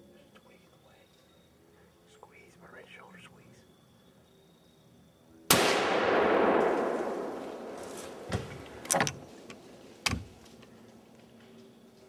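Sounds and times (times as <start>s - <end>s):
gunshot: 5.5s - 8.5s.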